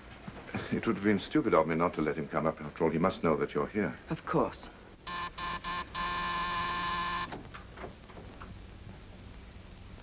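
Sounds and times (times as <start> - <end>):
electric door buzzer: 5.1 - 7.4.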